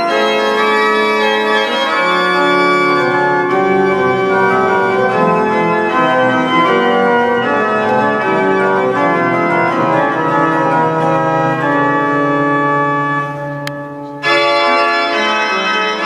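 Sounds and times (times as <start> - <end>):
organ music with held chords: 0.0 - 16.0.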